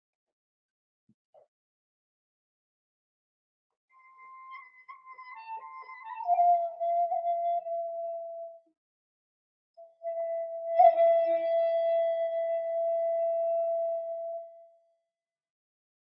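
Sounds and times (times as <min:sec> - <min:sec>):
flute long held notes: 0:04.0 - 0:08.7, 0:09.8 - 0:14.9.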